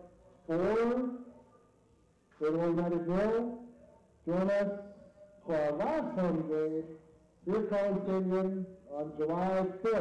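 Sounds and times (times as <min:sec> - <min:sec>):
man announcing: 0:00.0 - 0:01.5, 0:02.4 - 0:10.0.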